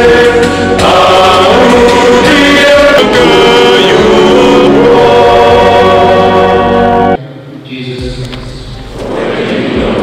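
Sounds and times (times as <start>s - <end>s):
choir singing a hymn: 0.0s - 7.2s, 8.9s - 10.0s.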